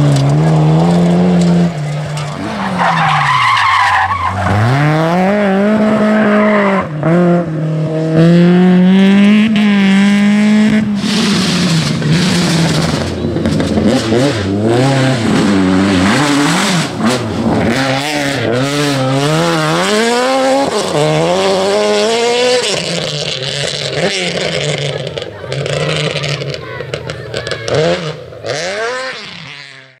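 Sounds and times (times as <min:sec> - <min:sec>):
rally car engines revving: 0:00.0 - 0:30.0.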